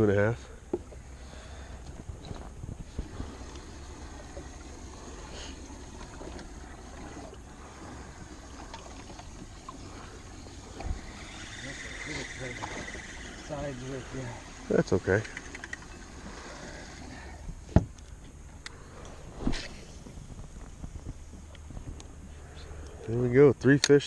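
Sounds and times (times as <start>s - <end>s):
waves lapping against boat hull: 0.0s - 23.1s
wind rumble on microphone: 0.9s - 5.3s, 16.3s - 23.4s.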